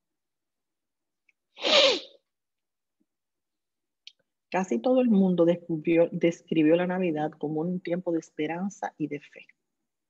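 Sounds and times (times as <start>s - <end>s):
person sneezing: 1.6s - 2.2s.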